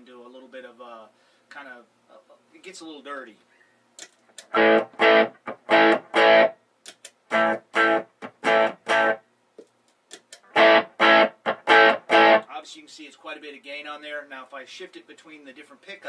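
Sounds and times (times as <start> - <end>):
electric guitar choppy chords: 4.4 - 6.6, 7.3 - 9.2, 10.4 - 12.5.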